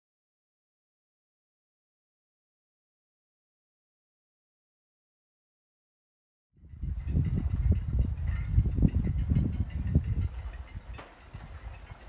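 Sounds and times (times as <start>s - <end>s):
wind buffeting microphone: 6.6s - 12.0s.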